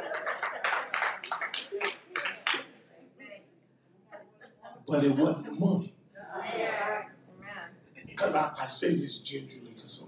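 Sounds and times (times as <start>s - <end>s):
laughter: 0.0s - 1.2s
people clapping: 0.0s - 2.8s
murmur of voices: 1.5s - 10.0s.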